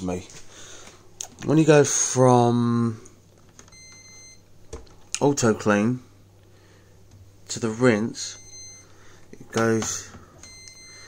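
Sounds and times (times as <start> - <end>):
washing machine beep: 3.7 - 4.5, 8.3 - 9.0, 10.4 - 11.0.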